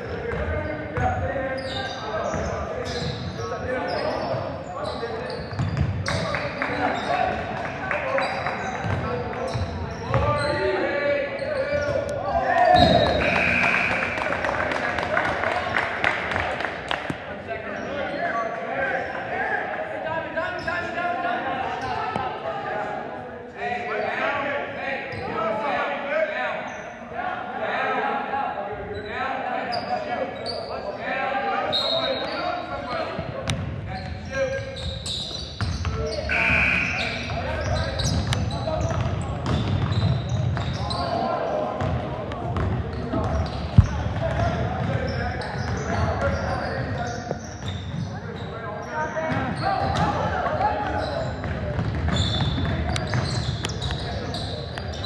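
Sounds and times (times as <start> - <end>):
basketball bouncing on court: 8.8 - 10.3, 38.0 - 40.8, 41.8 - 46.4, 51.3 - 54.0.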